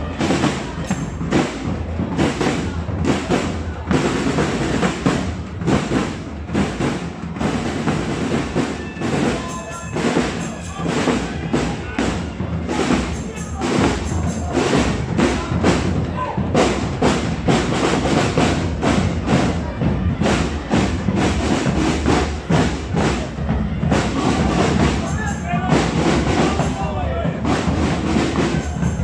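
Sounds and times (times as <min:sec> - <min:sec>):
murmur of crowd voices: 0:00.0 - 0:29.0
parade drums beating: 0:00.0 - 0:29.0.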